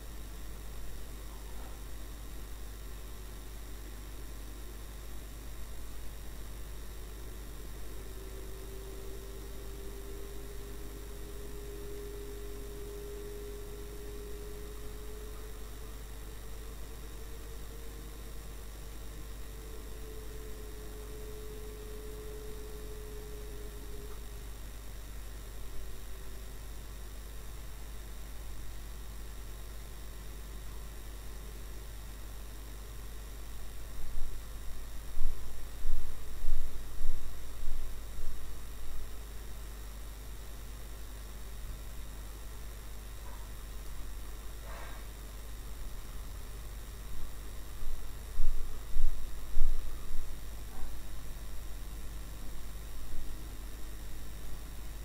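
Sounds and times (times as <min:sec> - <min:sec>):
faint wavering tone: 0:00.0 - 0:39.4, 0:43.2 - 0:54.7
electrical hum: 0:00.0 - 0:55.0
car interior drone: 0:05.6 - 0:27.3.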